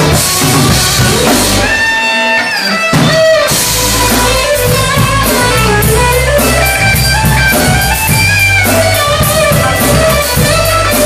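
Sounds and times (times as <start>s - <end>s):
bass and drums: 0.0s - 11.0s
electric guitar lead notes: 0.0s - 11.0s.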